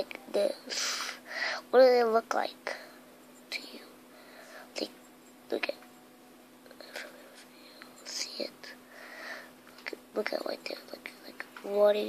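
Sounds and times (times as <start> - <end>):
faint whispering: 3.5 - 4.9, 6.7 - 8.8
hissing breath: 8.8 - 9.6.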